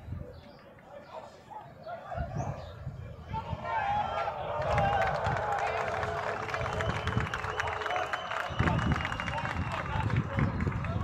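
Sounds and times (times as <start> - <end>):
wind rumbling on microphone: 0.0 - 0.4, 2.0 - 11.0
faint distant voices: 0.0 - 11.0.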